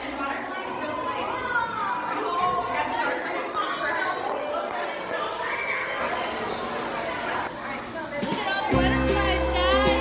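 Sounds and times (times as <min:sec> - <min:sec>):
children's voices chattering: 0:00.0 - 0:10.0.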